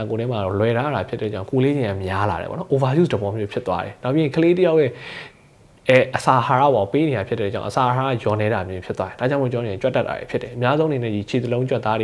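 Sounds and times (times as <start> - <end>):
man talking: 0.0 - 5.0, 5.8 - 12.0.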